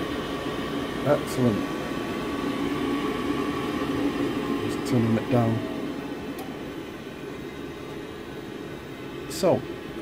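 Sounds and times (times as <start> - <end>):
boiler fan and burner hum: 0.0 - 10.0.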